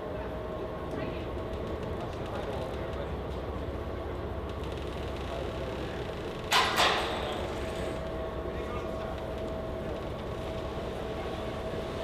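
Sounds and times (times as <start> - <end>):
even hum: 0.0 - 12.0.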